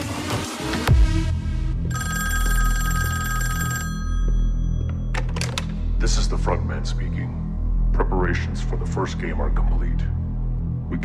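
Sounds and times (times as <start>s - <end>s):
old telephone bell ringing: 1.9s - 5.1s.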